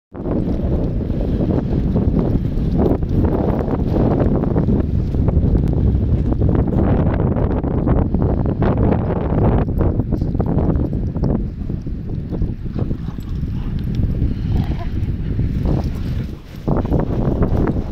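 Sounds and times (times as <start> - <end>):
strong wind on microphone: 0.1 - 17.9.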